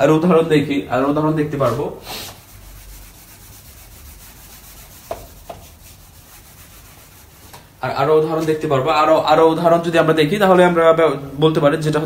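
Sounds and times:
eraser rubbing on whiteboard: 1.6s - 7.6s.

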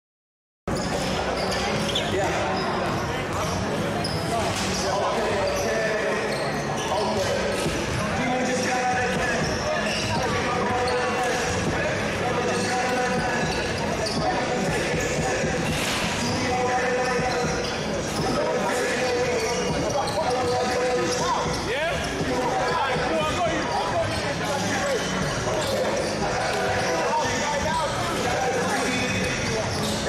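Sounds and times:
crowd chattering: 0.7s - 30.0s.

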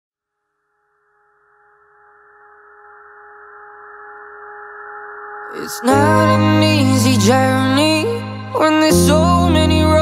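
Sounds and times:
a cappella vocal drone: 5.5s - 10.0s.

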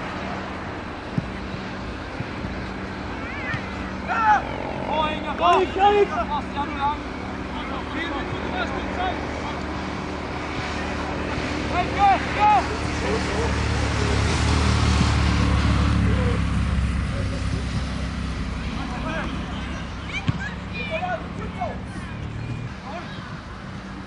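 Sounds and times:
distant shouts from players: 3.0s - 9.1s, 18.6s - 23.5s.

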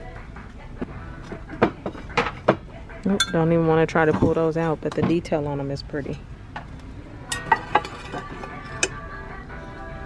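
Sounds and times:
ceramic bowls clinking: 1.6s - 4.4s, 7.3s - 9.0s.

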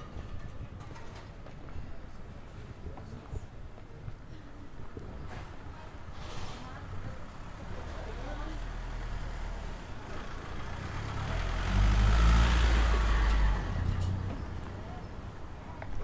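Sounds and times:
van engine passing by: 6.6s - 15.4s.

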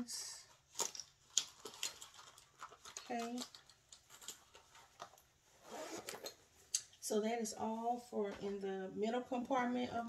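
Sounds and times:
pouch rustling: 0.7s - 6.5s.

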